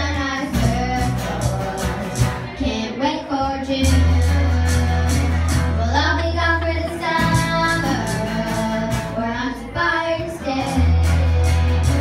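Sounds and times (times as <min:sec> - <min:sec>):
bass guitar: 0:00.0 - 0:12.0
electric guitar: 0:00.0 - 0:12.0
girl singing: 0:00.0 - 0:12.0.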